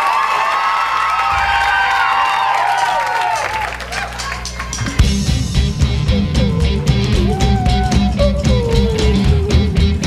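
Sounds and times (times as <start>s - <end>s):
audience cheering and whooping: 0.0s - 5.1s, 5.9s - 8.8s
steady low drone: 4.8s - 10.0s.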